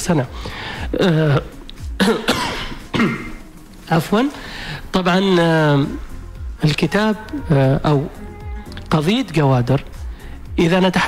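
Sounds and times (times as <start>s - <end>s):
man coughing: 0.8s - 3.4s.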